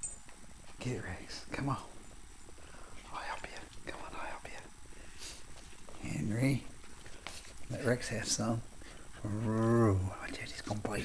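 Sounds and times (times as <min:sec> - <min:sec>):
person whispering: 0:03.0 - 0:04.7, 0:09.2 - 0:11.0.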